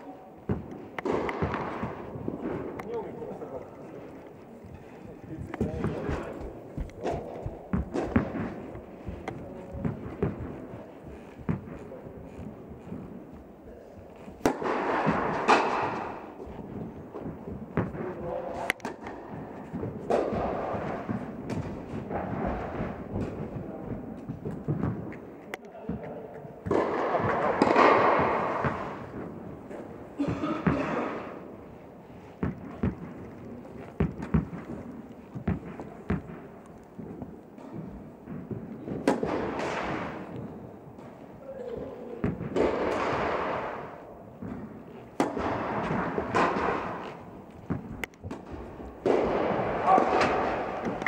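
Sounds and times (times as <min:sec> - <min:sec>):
voices in a hall: 0:00.0 - 0:51.0
tennis balls struck by rackets: 0:00.4 - 0:04.8, 0:05.5 - 0:13.5, 0:14.2 - 0:51.0.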